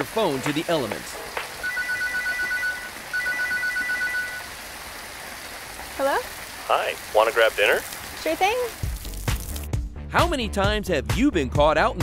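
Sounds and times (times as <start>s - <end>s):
steady rain: 0.0s - 9.7s
phone ringing: 1.6s - 4.6s.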